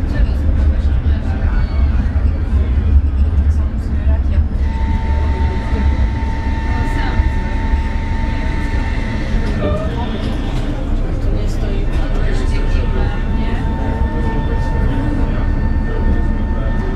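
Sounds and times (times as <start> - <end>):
tram rumbling on track: 0.0 - 16.9
steady high tone: 4.6 - 16.9.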